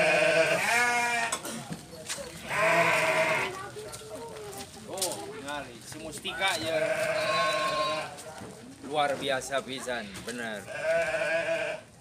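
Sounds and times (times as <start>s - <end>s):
sheep bleating: 0.0s - 1.4s, 2.4s - 3.6s, 6.4s - 8.2s, 10.6s - 11.9s.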